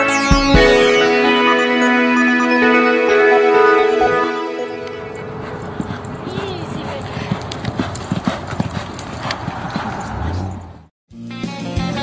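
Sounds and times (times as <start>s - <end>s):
horse hoofbeats galloping on dirt: 5.4s - 10.7s.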